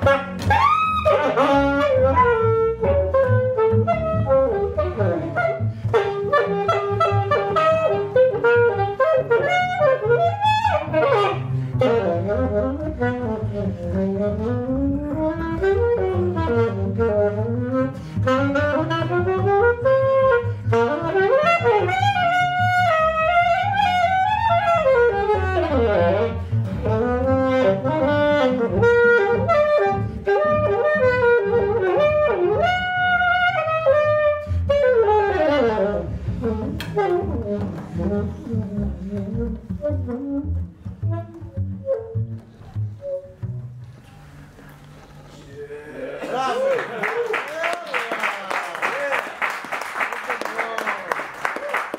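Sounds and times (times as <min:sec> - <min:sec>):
plucked double bass: 0:00.0 - 0:45.4
saxophone: 0:00.0 - 0:45.5.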